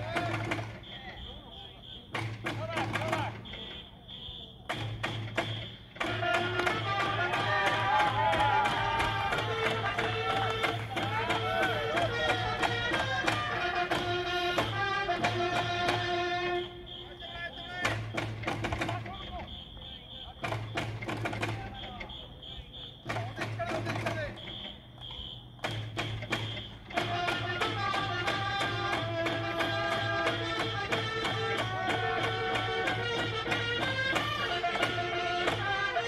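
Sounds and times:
shrill electronic whistle blasts: 0:00.8 - 0:02.4, 0:03.1 - 0:11.9, 0:16.3 - 0:27.1
big drums beating: 0:04.6 - 0:16.3, 0:17.6 - 0:22.2, 0:23.0 - 0:24.7, 0:25.6 - 0:36.0
crowd singing cheering song: 0:06.1 - 0:12.9.

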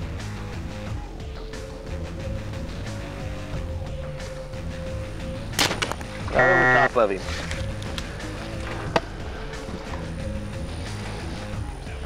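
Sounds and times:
background music with low drone: 0:00.0 - 0:12.0
bow shot snap: 0:05.5 - 0:06.2.

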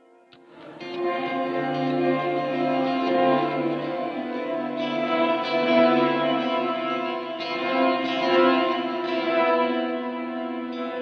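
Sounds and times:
electric guitar with delay: 0:00.0 - 0:11.0.

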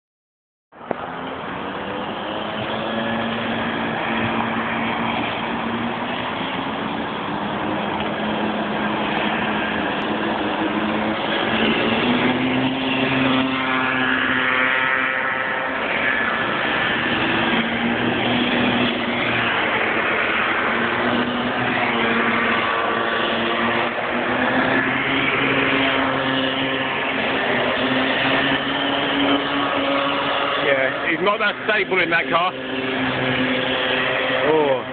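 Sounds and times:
racing kart engines: 0:00.8 - 0:34.9.

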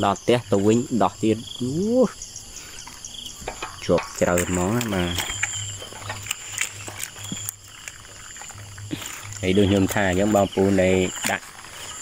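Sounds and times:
insects chirping: 0:00.0 - 0:12.0
fishing net rustling: 0:02.5 - 0:12.0.

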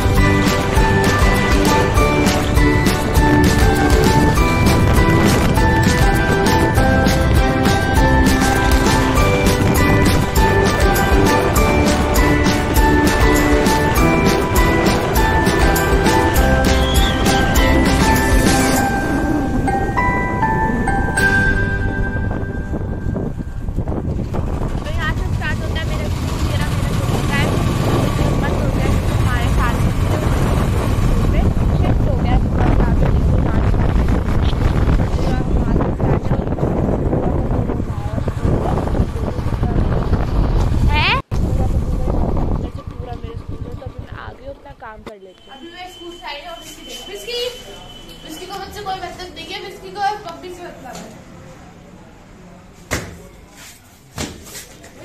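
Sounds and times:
wind buffeting microphone: 0:00.0 - 0:45.0
moving vehicle rumble: 0:00.0 - 0:55.0.

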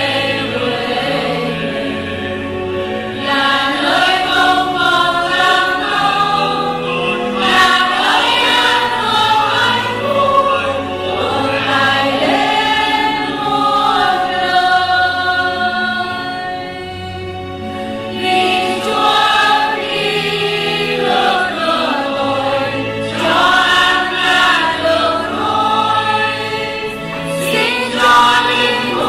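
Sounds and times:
choir singing a slow hymn: 0:00.0 - 0:29.0
low accompanying notes: 0:00.0 - 0:29.0.

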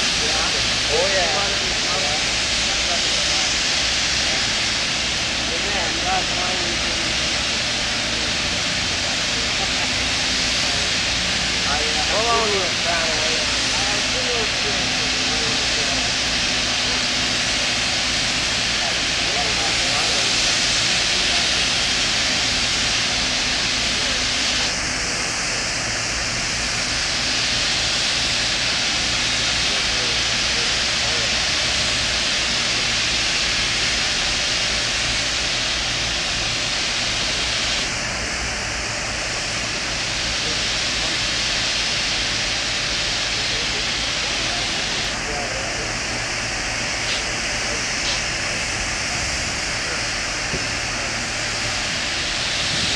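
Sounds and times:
high-pressure water hissing on steel: 0:00.0 - 0:52.9.

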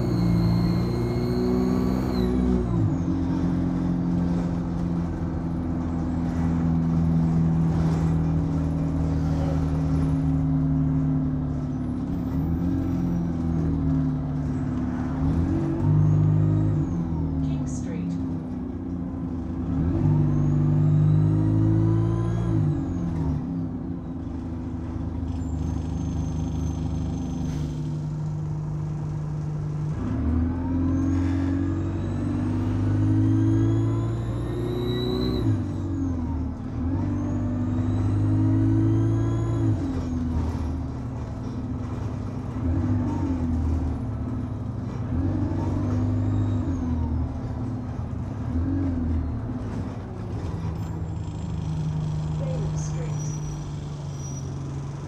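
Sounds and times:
high turbo whine: 0:00.0 - 0:02.9
bus diesel engine accelerating: 0:00.0 - 0:55.0.

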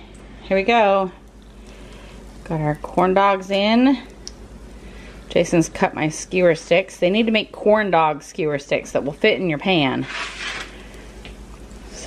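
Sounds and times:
food deep-frying in hot oil: 0:01.2 - 0:12.0.

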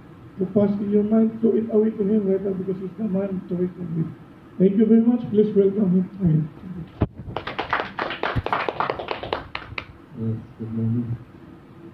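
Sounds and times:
small audience clapping: 0:07.2 - 0:10.0.

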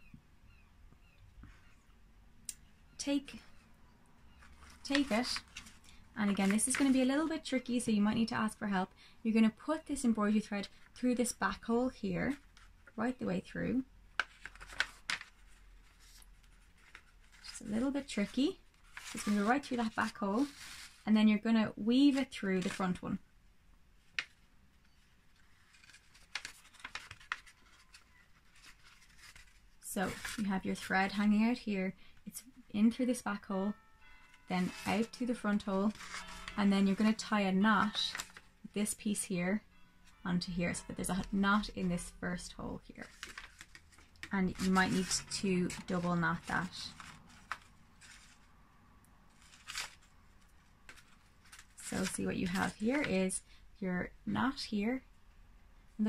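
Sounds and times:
paper rustling and crinkling: 0:04.4 - 0:07.7, 0:14.1 - 0:21.0, 0:22.0 - 0:23.0, 0:24.0 - 0:30.5, 0:34.6 - 0:38.5, 0:42.9 - 0:48.6, 0:49.3 - 0:53.3.

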